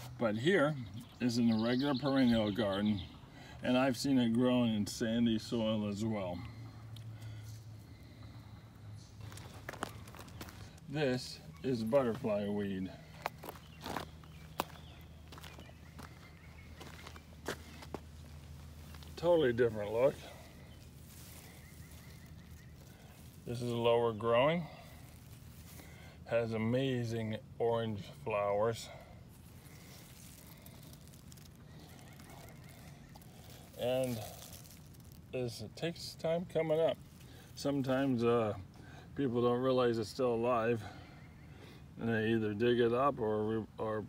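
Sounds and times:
low steady rumble and hiss: 0.0s - 44.0s
steady low hum: 2.3s - 44.0s
crisp crunches and clicks: 9.2s - 12.4s, 13.0s - 26.2s, 29.3s - 35.6s
footsteps on dry leaves: 9.2s - 26.7s, 28.6s - 35.4s.

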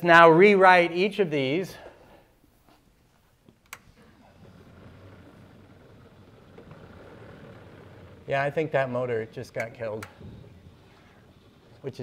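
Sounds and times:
electric motor humming: 3.8s - 12.0s.

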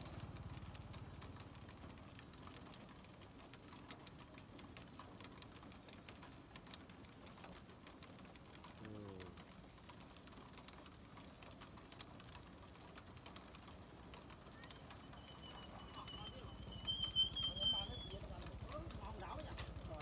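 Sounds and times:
rotisserie chain clicking: 0.0s - 20.0s.

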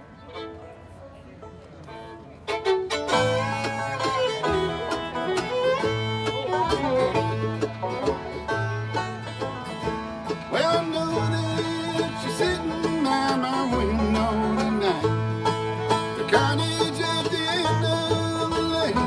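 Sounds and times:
bluegrass band playing: 0.0s - 19.0s
upright bass repeated low notes: 6.9s - 19.0s.

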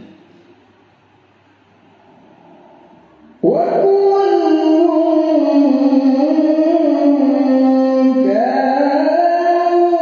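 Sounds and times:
man chanting melodically: 3.2s - 10.0s.

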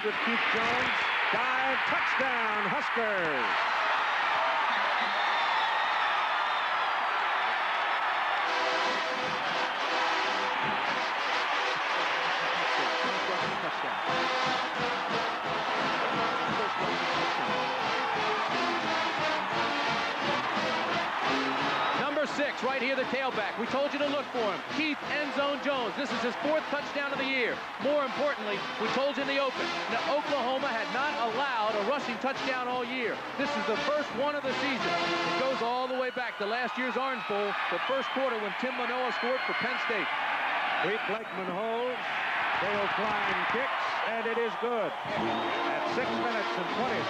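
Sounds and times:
man's voice: 0.0s - 3.5s, 22.0s - 40.0s, 42.6s - 47.0s
stadium crowd cheering: 0.0s - 47.0s
marching band brass playing: 8.3s - 22.0s, 27.6s - 31.4s, 33.2s - 35.7s, 45.1s - 47.0s.

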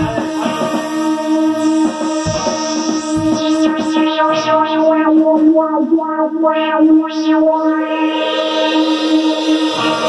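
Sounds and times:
distorted electric guitar: 0.0s - 10.0s.

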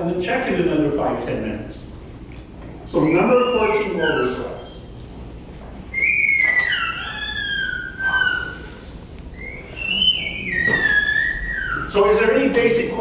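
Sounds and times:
small child squealing: 2.9s - 4.8s, 5.9s - 12.0s.

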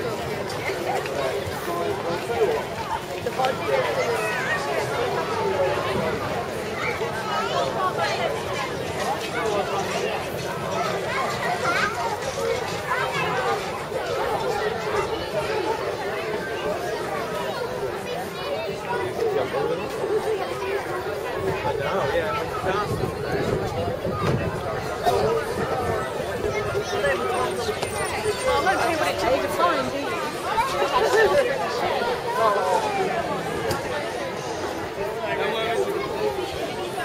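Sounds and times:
people chattering: 0.0s - 37.0s.

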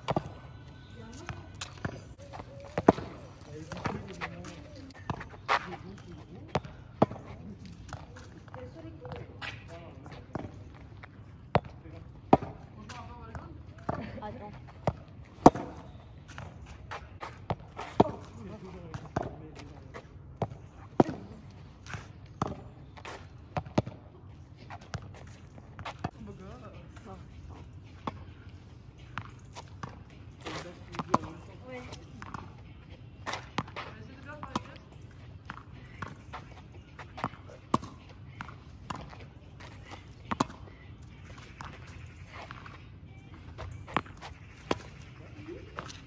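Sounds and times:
tennis ball bouncing on asphalt: 0.0s - 46.0s
tennis ball struck with racket: 15.4s - 15.8s, 37.2s - 39.2s.

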